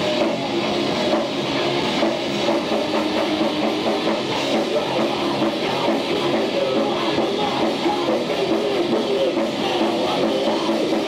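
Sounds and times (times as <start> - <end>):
live metal band playing: 0.0 - 11.0.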